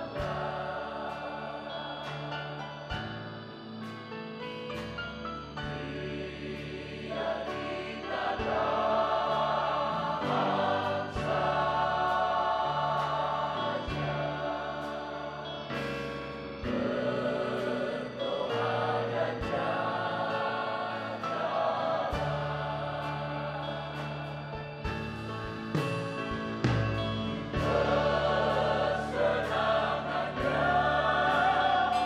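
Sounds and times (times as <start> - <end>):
choir singing worship song: 0.0 - 32.0
instrumental accompaniment: 0.0 - 32.0.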